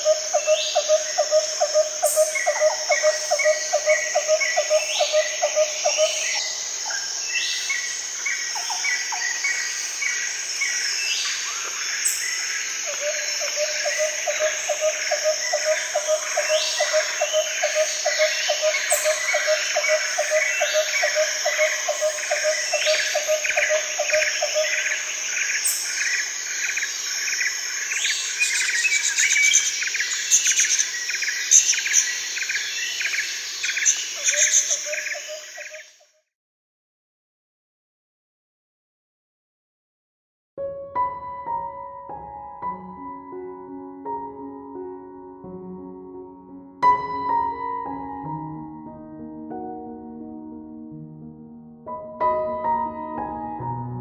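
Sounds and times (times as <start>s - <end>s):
insect drone: 0.0s - 36.1s.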